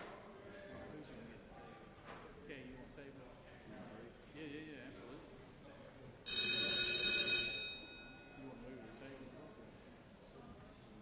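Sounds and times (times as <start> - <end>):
bell ringing: 6.3 - 8.4.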